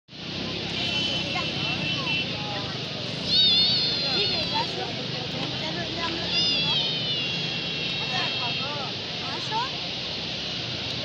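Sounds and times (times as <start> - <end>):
steady rushing hiss: 0.1 - 11.0
faint voices: 0.2 - 11.0
thin high steady tone: 0.5 - 9.9.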